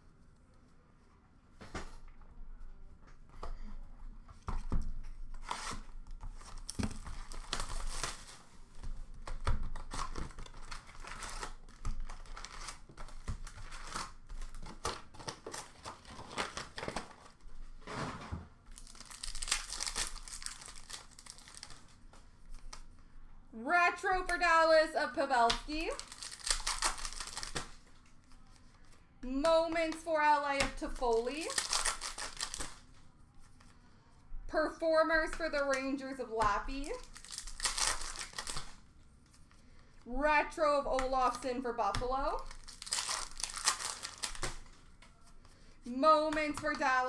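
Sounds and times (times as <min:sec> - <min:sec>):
wrappers being torn open: 0:06.4 - 0:08.4, 0:09.2 - 0:17.4, 0:18.7 - 0:22.0, 0:25.8 - 0:28.4, 0:30.9 - 0:32.9, 0:36.8 - 0:38.8, 0:42.4 - 0:44.8.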